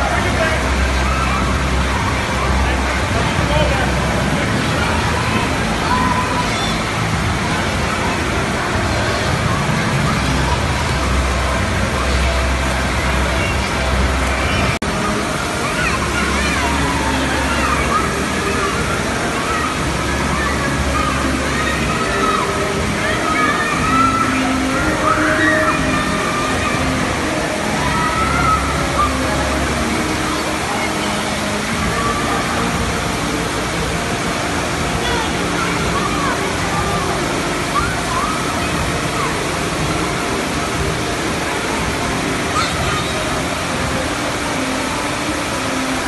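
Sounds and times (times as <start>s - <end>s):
children and adults calling and talking: 0.0s - 46.0s
rushing water with low rumble: 0.0s - 46.0s.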